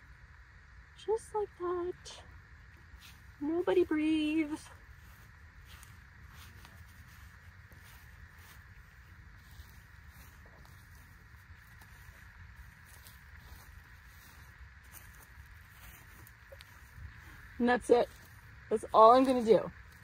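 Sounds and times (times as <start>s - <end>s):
outdoor background noise: 0.0s - 20.0s.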